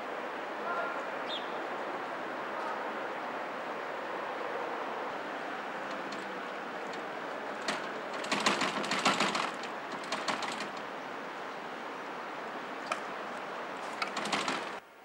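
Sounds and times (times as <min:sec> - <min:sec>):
steady background hiss: 0:00.0 - 0:15.0
glass door rattling: 0:05.6 - 0:11.6, 0:13.7 - 0:14.8.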